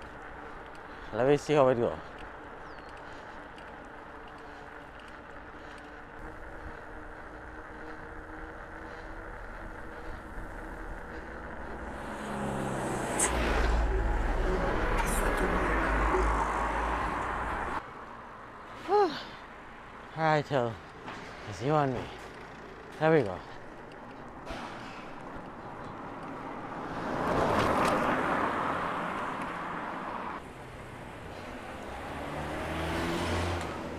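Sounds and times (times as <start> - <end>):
vehicle passing with low rumble: 0.0 - 18.4, 22.0 - 33.9
bicycle road and wind noise: 0.0 - 33.9.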